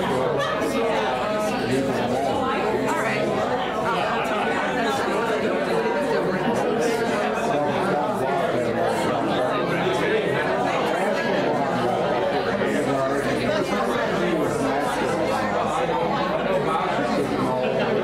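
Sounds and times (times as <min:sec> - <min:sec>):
many people talking: 0:00.0 - 0:18.0.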